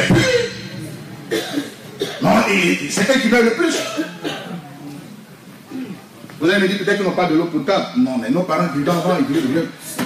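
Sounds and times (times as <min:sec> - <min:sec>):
man coughing: 0:00.0 - 0:00.6, 0:01.3 - 0:02.5, 0:03.7 - 0:04.6
man speaking into a microphone: 0:02.2 - 0:04.2, 0:06.4 - 0:10.0.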